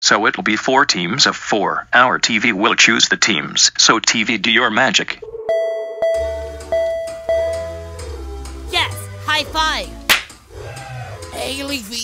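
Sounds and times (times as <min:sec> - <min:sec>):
background music with bass: 0:06.0 - 0:12.0.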